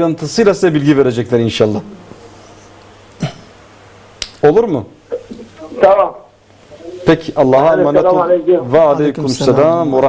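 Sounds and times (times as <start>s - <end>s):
faint steady hiss: 0.0s - 10.0s
low hum: 1.5s - 4.2s.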